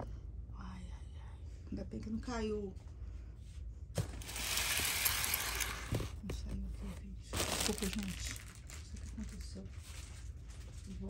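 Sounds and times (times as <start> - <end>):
plastic packing wrap crinkling: 4.0 - 6.2, 7.3 - 11.0.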